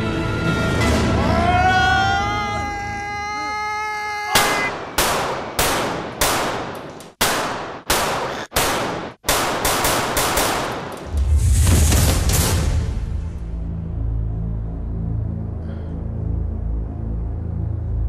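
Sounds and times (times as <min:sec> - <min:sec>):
handgun shots echoing: 0:04.4 - 0:11.0.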